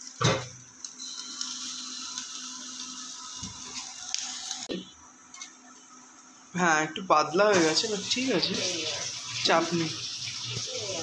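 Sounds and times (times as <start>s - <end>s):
batter sizzling in hot oil: 0.0s - 4.7s, 7.2s - 11.0s.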